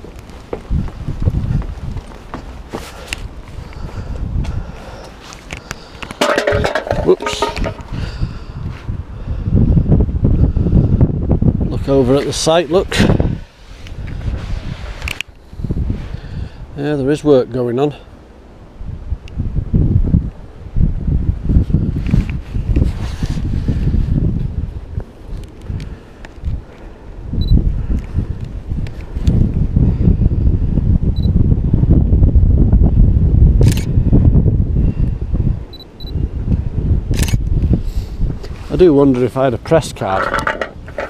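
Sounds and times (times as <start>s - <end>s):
wind buffeting microphone: 0.0s - 41.0s
camera shutter clicks: 37.2s - 37.4s.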